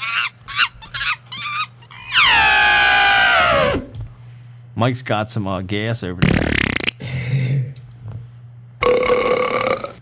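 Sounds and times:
low steady hum: 0.0s - 10.0s
gassy burp-like noise: 8.8s - 10.0s.

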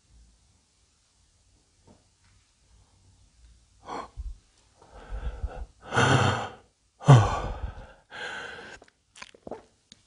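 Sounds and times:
man sighing heavily: 5.1s - 8.8s.

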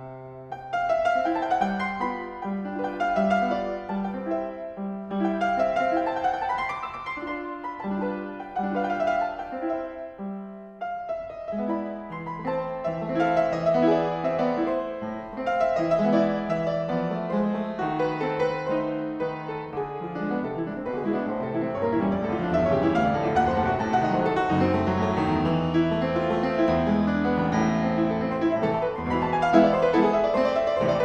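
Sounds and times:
solo piano classical piece: 0.0s - 31.0s.

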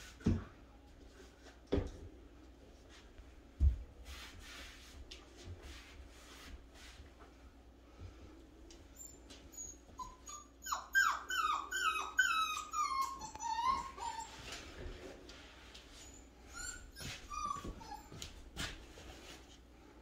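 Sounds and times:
puppy whimpering: 8.9s - 14.8s, 16.0s - 18.4s.

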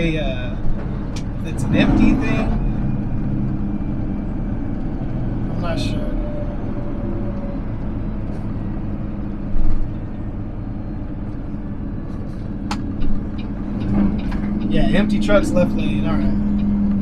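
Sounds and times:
diesel truck engine drone: 0.0s - 17.0s
road noise: 0.0s - 17.0s.

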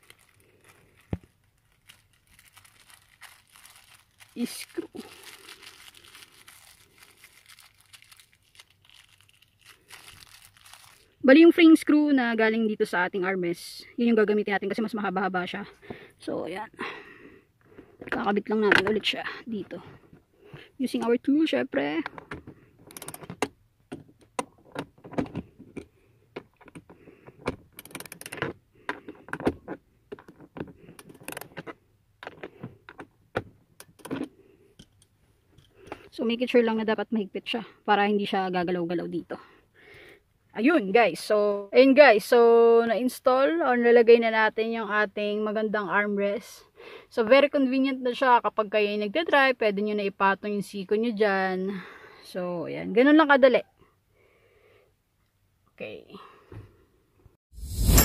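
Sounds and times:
plastic bag crinkling: 0.0s - 11.2s.

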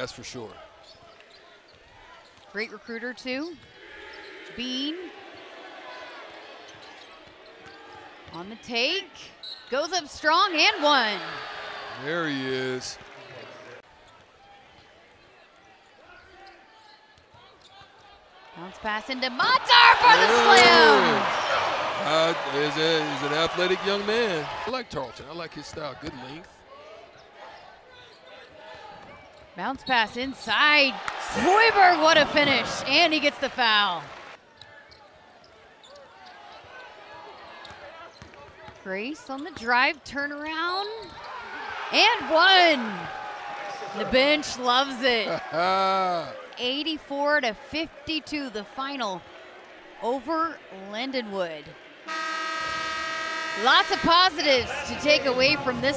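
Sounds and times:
crowd and bench voices: 17.8s - 24.7s, 30.1s - 34.4s, 53.6s - 55.9s.

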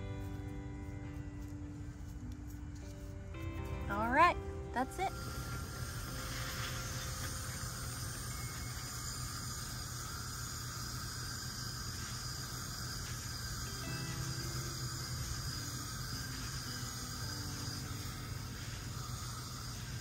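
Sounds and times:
low hum: 0.0s - 20.0s
faint hiss: 4.6s - 20.0s.

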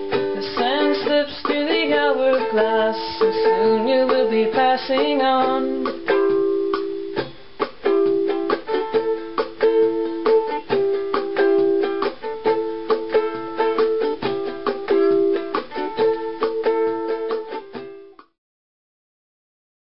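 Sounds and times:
ukulele chords: 0.0s - 18.4s.

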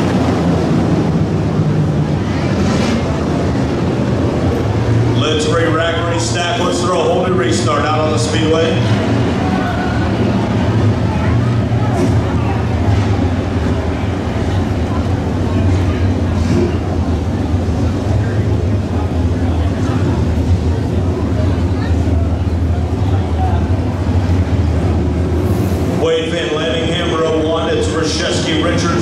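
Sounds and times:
race car engines rumbling: 0.0s - 29.0s.

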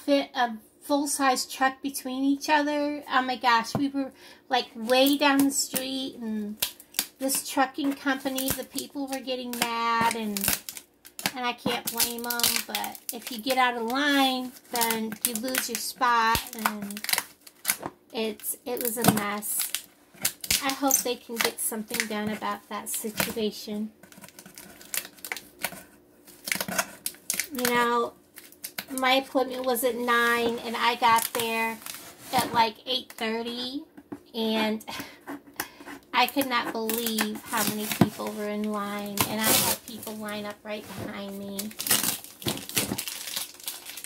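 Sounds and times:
tape crackles and clicks: 4.8s - 33.3s, 34.9s - 44.0s.

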